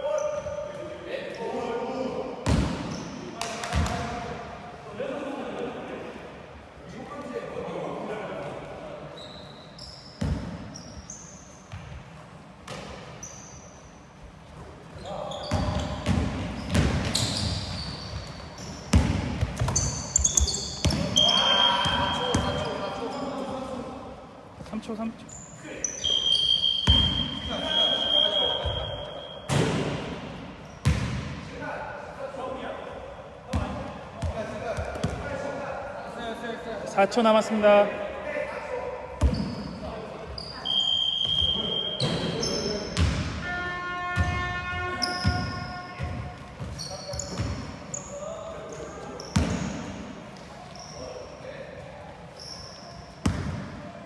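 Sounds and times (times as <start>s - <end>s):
players calling out: 19.8s - 23.5s, 25.3s - 29.5s.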